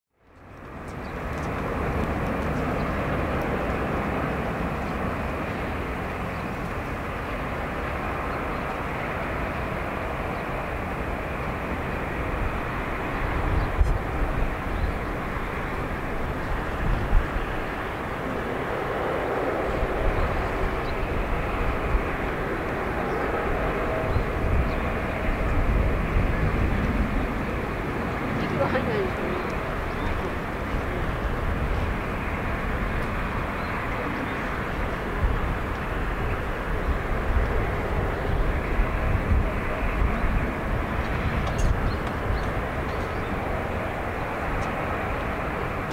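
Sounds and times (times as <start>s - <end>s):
jet engine noise: 0.2s - 45.9s.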